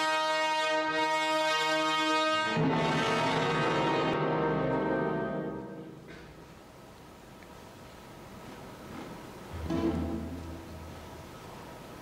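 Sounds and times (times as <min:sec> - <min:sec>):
orchestra with brass chords: 0:00.0 - 0:06.1.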